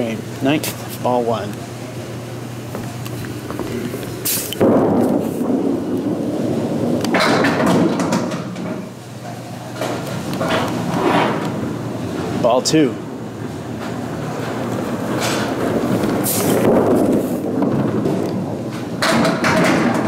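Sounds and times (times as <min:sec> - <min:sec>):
bowling ball rolling rumble: 0:01.7 - 0:20.0
bowling pins clattering: 0:02.7 - 0:12.4, 0:13.0 - 0:20.0
bowling ball knocking on wooden lane: 0:04.6 - 0:08.9.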